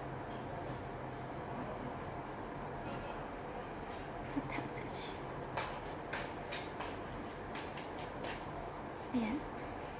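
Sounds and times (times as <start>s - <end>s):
background hum and hiss: 0.0s - 9.9s.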